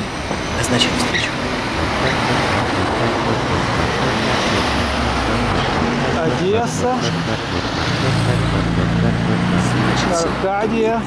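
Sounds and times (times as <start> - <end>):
deep engine hum: 0.0 - 10.7
cars driving past: 0.0 - 11.0.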